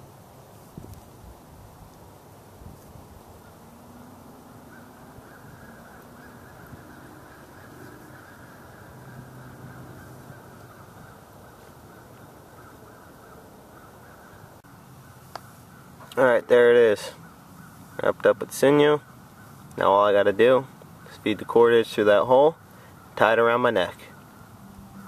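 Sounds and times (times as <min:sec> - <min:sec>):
distant birds calling: 0:00.0 - 0:25.0.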